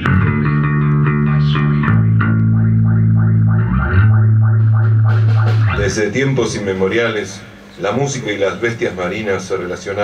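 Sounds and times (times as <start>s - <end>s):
pulsing effects guitar: 0.0s - 6.2s
electric bass low notes: 0.0s - 7.2s.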